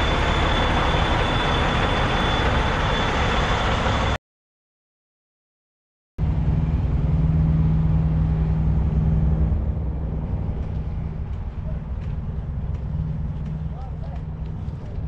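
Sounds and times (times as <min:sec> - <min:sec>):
diesel truck engine idling: 0:00.0 - 0:04.2.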